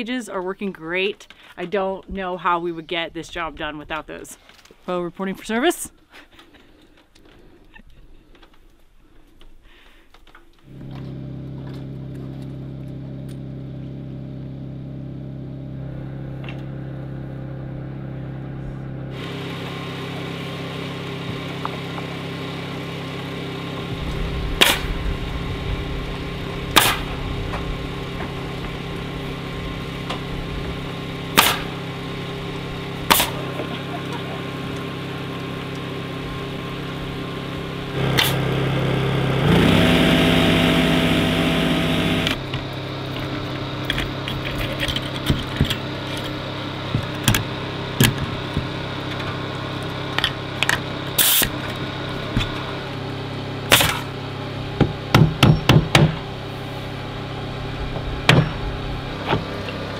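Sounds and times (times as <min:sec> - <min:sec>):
steady mechanical hum: 0:00.0 - 0:59.9
motor spinning up: 0:10.7 - 0:54.2
nail gun firing: 0:24.6 - 0:24.9, 0:26.7 - 0:27.1, 0:31.4 - 0:31.8, 0:33.1 - 0:33.4, 0:53.7 - 0:54.1.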